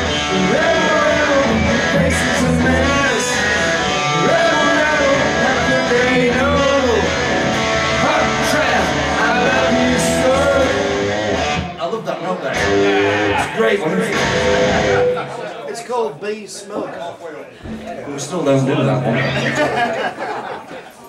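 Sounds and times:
man singing into a microphone: 0.0s - 7.2s, 8.0s - 11.2s
electric guitar: 0.0s - 11.8s, 12.5s - 15.6s.

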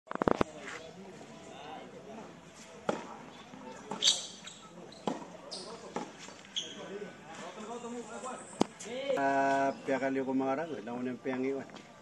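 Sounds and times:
tennis ball bouncing on hard court: 5.0s - 5.3s, 5.9s - 6.2s.

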